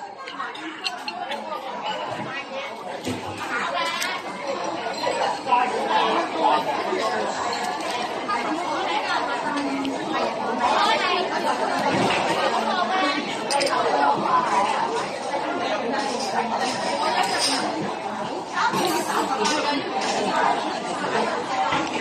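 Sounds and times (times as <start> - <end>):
babble of overlapping voices: 0.0 - 22.0.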